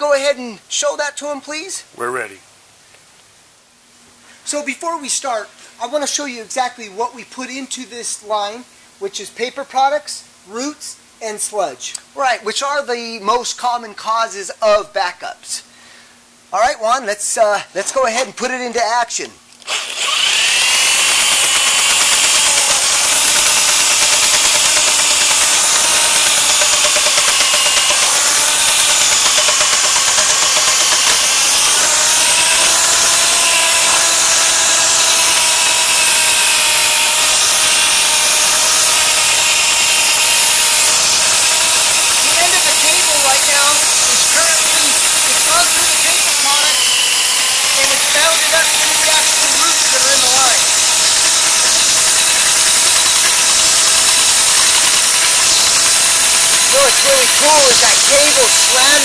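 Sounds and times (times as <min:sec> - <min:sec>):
drain snake machine motor whine: 0:19.7 - 0:59.0.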